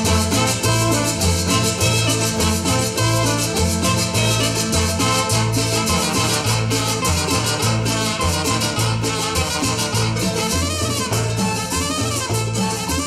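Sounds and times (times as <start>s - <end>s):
guitar: 0.0s - 13.0s
percussion pulse: 0.0s - 13.0s
trumpets: 0.0s - 13.0s
upright bass line: 0.0s - 13.0s.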